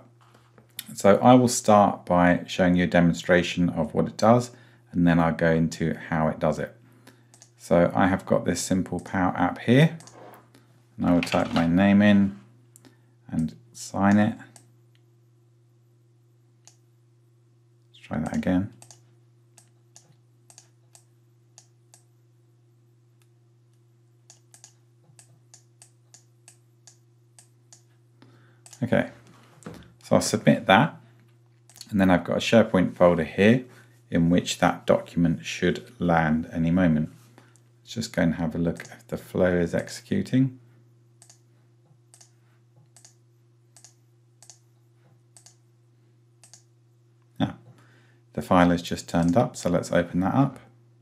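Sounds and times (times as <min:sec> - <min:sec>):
faint low hum: 0:00.0 - 0:51.0
faint computer mouse clicks: 0:07.3 - 0:07.5, 0:24.3 - 0:27.9, 0:41.2 - 0:41.4, 0:42.1 - 0:43.2, 0:43.8 - 0:44.6, 0:45.4 - 0:45.6, 0:46.4 - 0:46.7.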